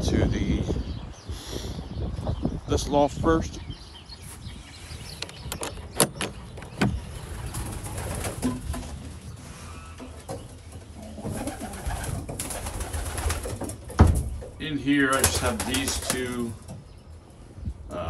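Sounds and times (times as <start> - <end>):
pigeons cooing: 6.9 - 13.9.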